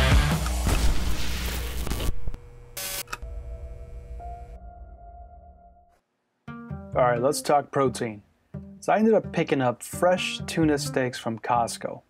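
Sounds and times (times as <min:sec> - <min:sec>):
loud rock music: 0:00.0 - 0:01.6.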